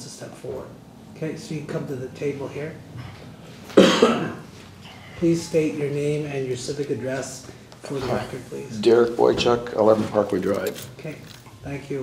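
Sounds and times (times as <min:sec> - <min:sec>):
person coughing: 0:03.7 - 0:05.0.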